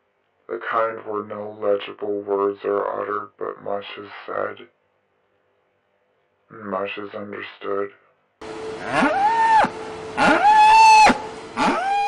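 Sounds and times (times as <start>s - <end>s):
cow bawling: 8.8s - 12.0s.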